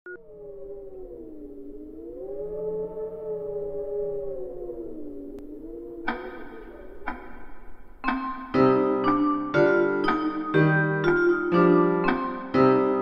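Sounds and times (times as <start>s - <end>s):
eerie wailing tone: 0.1s - 8.4s.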